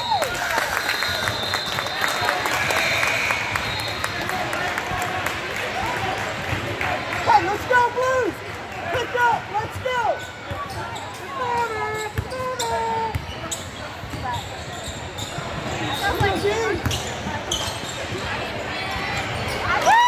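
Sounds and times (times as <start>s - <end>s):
spectators talking: 0.0s - 20.0s
sneakers squeaking: 10.1s - 19.8s.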